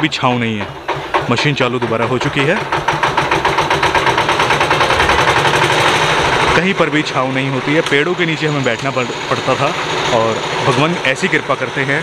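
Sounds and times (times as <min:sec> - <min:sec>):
concrete mixer engine running: 0:00.0 - 0:12.0
fast even pulsing beat: 0:00.0 - 0:12.0.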